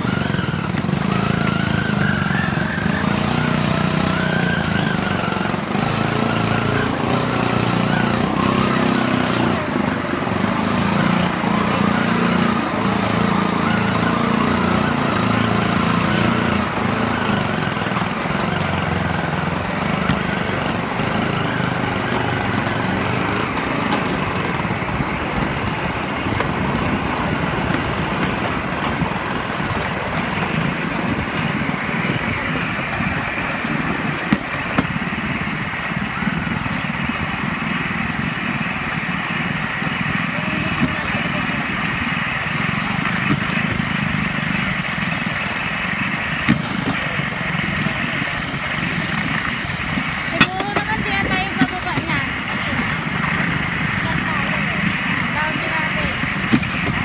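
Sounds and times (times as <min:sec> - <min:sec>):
small engine running: 0:00.0 - 0:57.0
trolley rattling on rails: 0:00.0 - 0:57.0.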